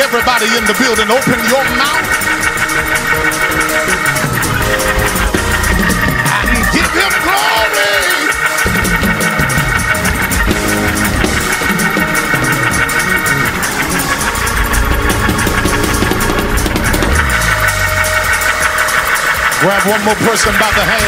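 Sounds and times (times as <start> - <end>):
organ playing held chords: 0.0 - 21.0.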